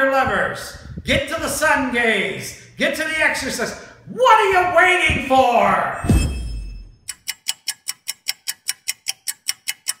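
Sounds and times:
rapid clock ticking: 7.0 - 10.0.

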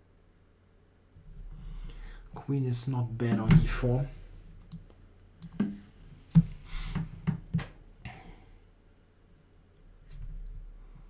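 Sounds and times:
computer mouse clicking: 4.6 - 5.9.

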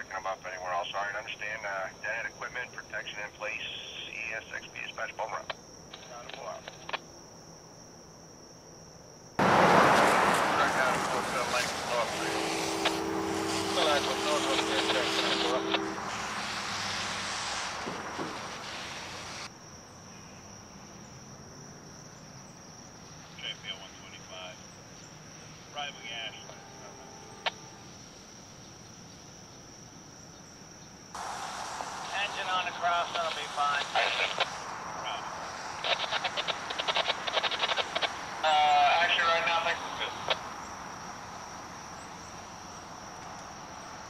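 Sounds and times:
garbled radio transmission: 0.0 - 7.0, 10.5 - 19.5, 23.2 - 24.7, 25.6 - 27.8, 31.2 - 40.6
radio static burst: 0.0 - 7.0, 10.4 - 19.5, 31.2 - 40.9
crickets chirping: 0.0 - 44.0.

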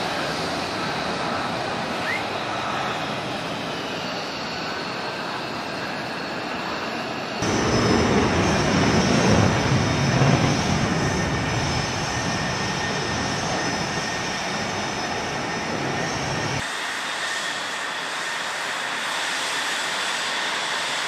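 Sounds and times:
high turbine whine: 0.0 - 21.0
jet engines idling: 0.0 - 21.0.

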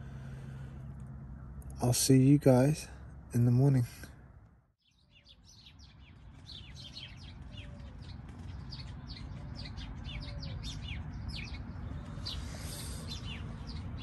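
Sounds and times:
low background hum: 0.0 - 4.7
birds chirping: 0.0 - 14.0.

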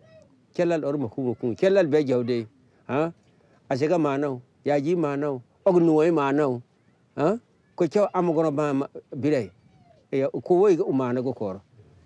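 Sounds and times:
man speaking: 0.5 - 9.5, 10.1 - 11.7.

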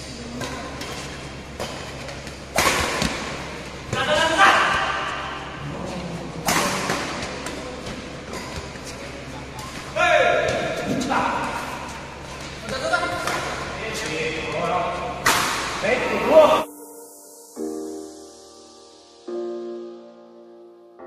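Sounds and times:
racket striking shuttlecock: 0.3 - 3.5, 15.2 - 15.8.

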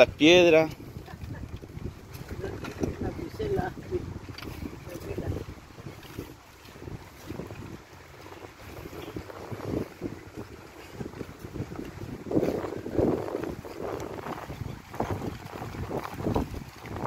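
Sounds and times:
wind buffeting microphone: 0.0 - 17.0.

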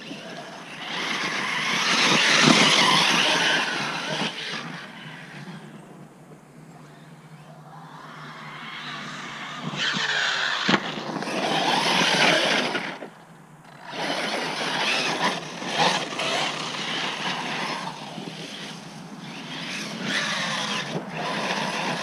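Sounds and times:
electric motor whining: 0.0 - 6.0, 6.8 - 13.1, 13.7 - 22.0
tyres running on soft dirt: 0.0 - 7.5, 8.4 - 22.0.

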